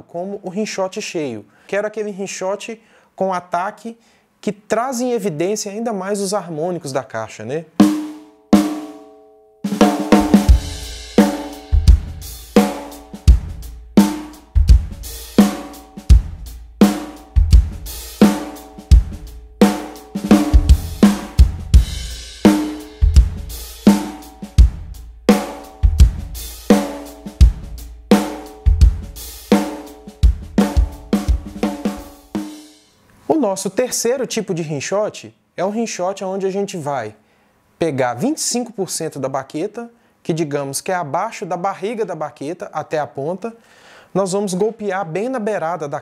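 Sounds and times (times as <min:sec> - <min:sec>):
drum kit groove: 0:07.8 - 0:09.0, 0:09.7 - 0:32.9.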